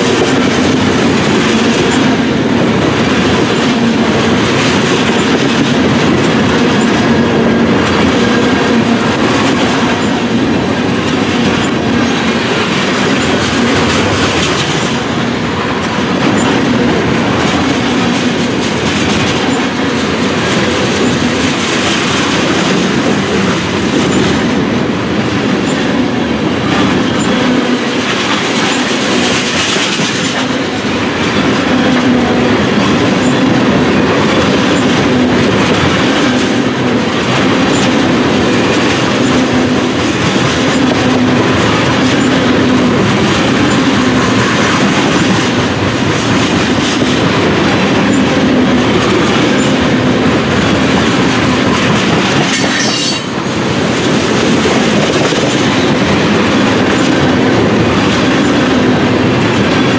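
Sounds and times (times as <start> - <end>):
train wheels clacking on rail: 0.0 - 59.9.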